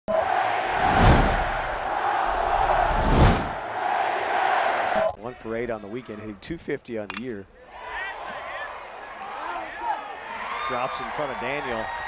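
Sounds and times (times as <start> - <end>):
stadium crowd roar: 0.1 - 6.1, 7.6 - 12.0
whooshes with low rumble: 0.7 - 3.6.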